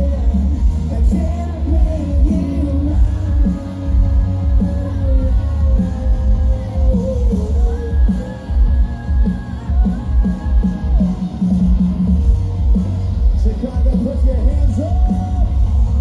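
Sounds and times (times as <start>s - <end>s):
drums keeping steady beat: 0.0s - 16.0s
electric guitars: 0.0s - 16.0s
sung vocals: 0.0s - 16.0s.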